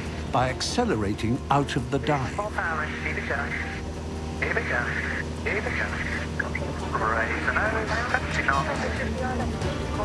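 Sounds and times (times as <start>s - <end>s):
light aircraft engine droning: 0.0s - 10.0s.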